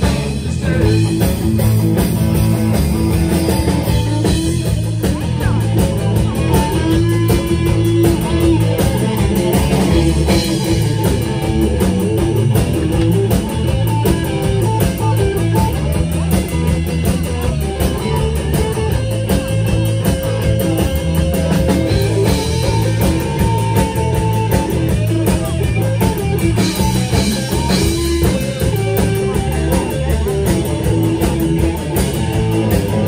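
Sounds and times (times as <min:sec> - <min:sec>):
drum kit: 0:00.0 - 0:33.0
electric bass: 0:00.0 - 0:33.0
electric guitar lead with bent notes: 0:00.0 - 0:33.0
second electric guitar: 0:00.0 - 0:33.0.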